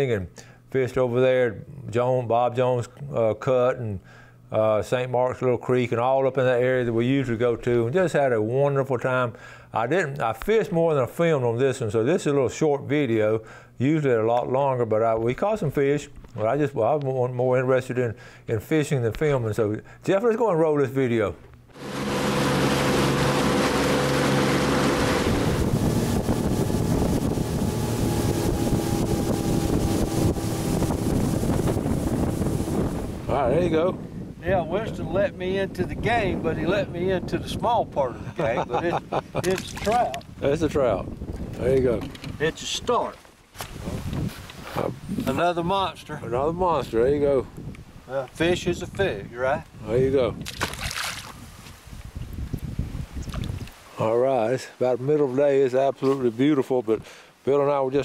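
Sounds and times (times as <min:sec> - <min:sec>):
outboard motor running: 0:21.7 - 0:33.6
rushing water: 0:21.8 - 0:33.4, 0:50.6 - 0:51.4
wind on microphone: 0:21.8 - 0:45.5, 0:46.2 - 0:53.8
fish splashing into water: 0:50.4 - 0:51.4.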